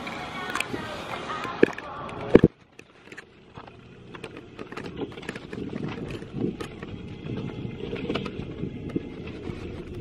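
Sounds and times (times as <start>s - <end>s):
wind buffeting microphone: 3.5s - 10.0s.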